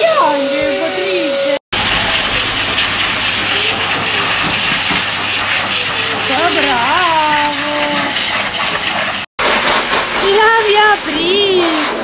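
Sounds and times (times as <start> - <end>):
dryer blasting air: 0.0 - 12.0
low motor hum: 1.8 - 7.6.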